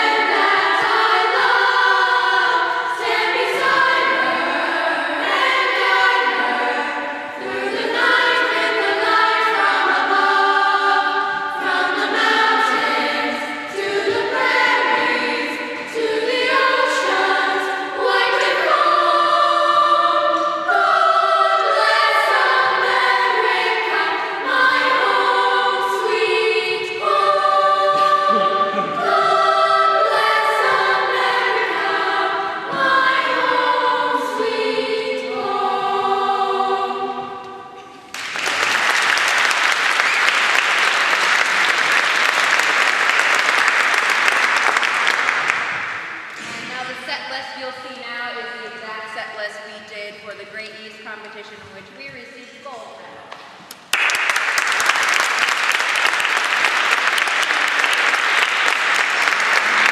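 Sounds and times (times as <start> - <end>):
choir singing: 0.0 - 47.0, 55.1 - 59.9
audience applauding: 38.1 - 46.0, 53.8 - 59.9.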